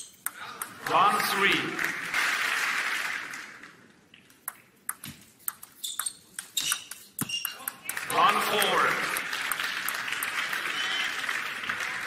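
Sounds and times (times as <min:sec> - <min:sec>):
crowd applauding: 0:00.8 - 0:03.8, 0:07.8 - 0:12.0
table tennis ball clicks: 0:04.3 - 0:08.0.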